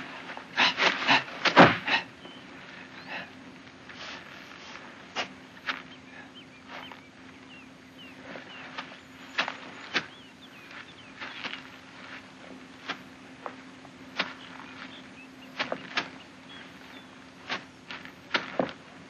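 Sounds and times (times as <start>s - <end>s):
steady low hum: 0.0s - 19.0s
faint bird chirps: 2.1s - 3.4s, 5.6s - 12.3s, 14.2s - 17.3s.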